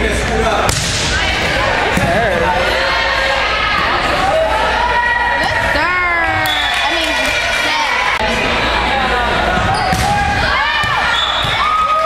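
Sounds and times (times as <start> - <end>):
spectators and players shouting: 0.9 - 12.0.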